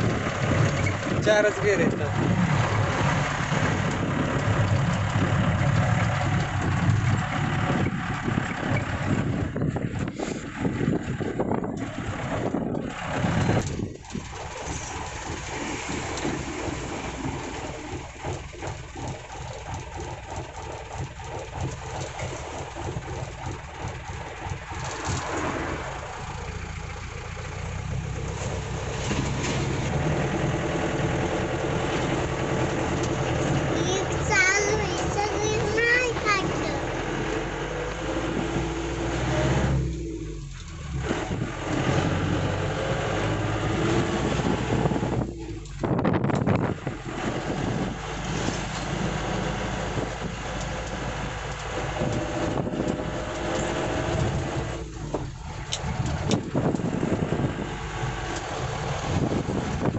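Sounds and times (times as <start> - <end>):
diesel engine running: 0.0 - 59.9
road noise: 0.0 - 59.9.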